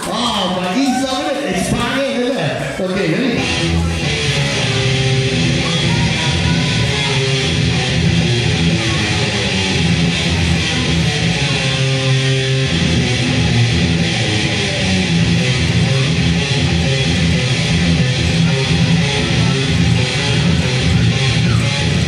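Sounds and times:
heavy rock music with electric guitar: 0:02.6 - 0:22.0.

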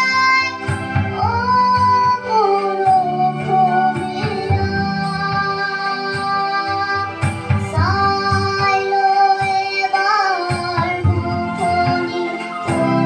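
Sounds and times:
girl singing into a microphone: 0:00.0 - 0:13.0.

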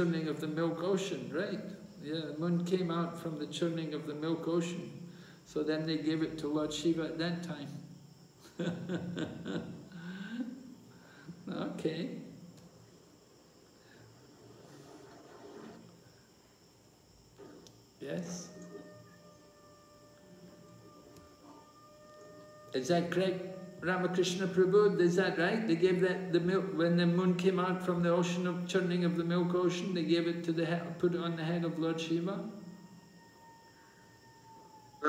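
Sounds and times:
faint steady whine: 0:00.0 - 0:35.0
faint steady high tone: 0:15.7 - 0:35.0.

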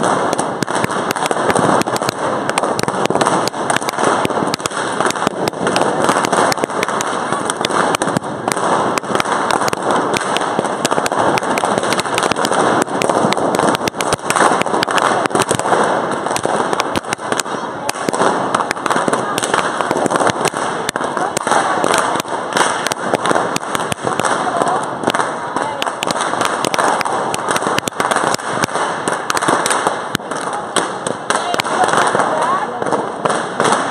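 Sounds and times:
balloons popping: 0:00.0 - 0:33.9
chatter of many voices: 0:14.4 - 0:33.3.

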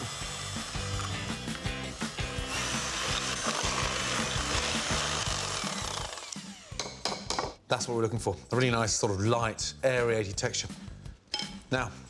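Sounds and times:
electric hand mixer whisking: 0:00.0 - 0:06.8.

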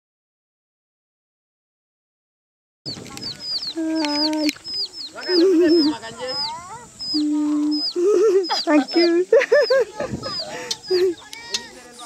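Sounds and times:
chicks peeping: 0:02.9 - 0:12.0.

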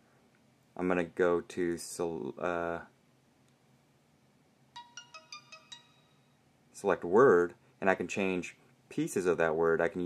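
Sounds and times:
faint electronic phone melody: 0:04.8 - 0:06.5.

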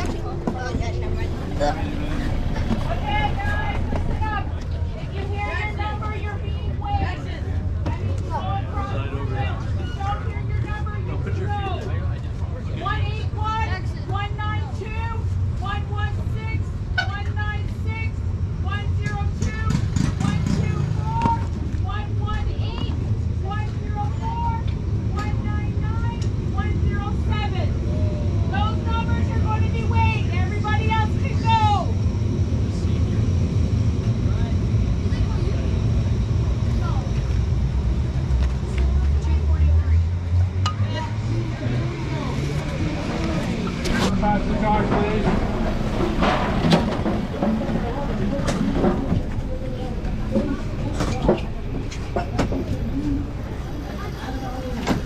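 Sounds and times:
engine pitch climbing: 0:00.0 - 0:07.4
low engine drone: 0:00.0 - 0:17.1, 0:20.4 - 0:55.0
voices: 0:00.0 - 0:55.0.

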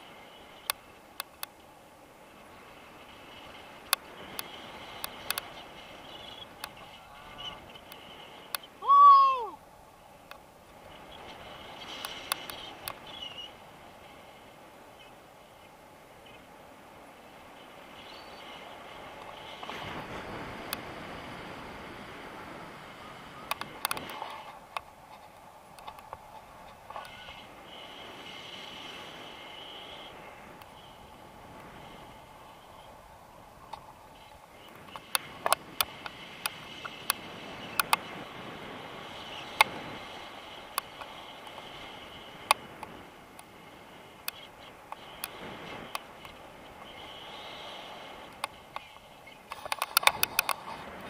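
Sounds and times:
person yelling: 0:08.8 - 0:09.6
wind noise on microphone: 0:17.8 - 0:51.0.

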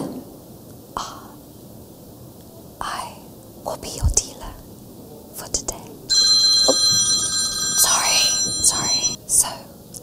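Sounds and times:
loud multi-pitch ringing: 0:06.1 - 0:09.2.

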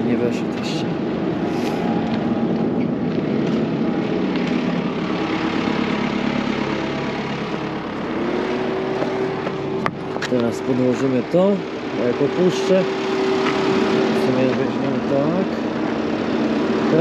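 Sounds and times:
tractor engine idling: 0:00.0 - 0:17.0.

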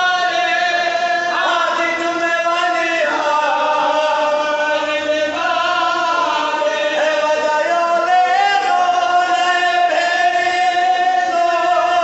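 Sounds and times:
men chanting through a microphone: 0:00.0 - 0:12.0.

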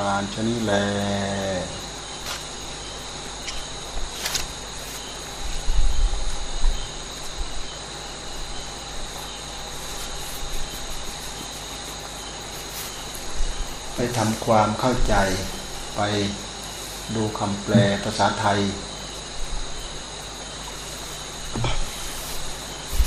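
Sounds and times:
steady high-pitched whine: 0:00.0 - 0:23.0.

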